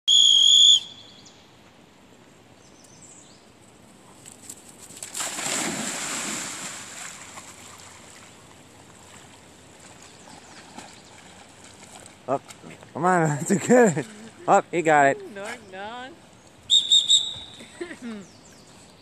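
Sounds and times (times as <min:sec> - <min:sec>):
dog-training whistle blast: 0:00.1 - 0:01.1, 0:16.7 - 0:17.6
splashing water: 0:04.3 - 0:14.5.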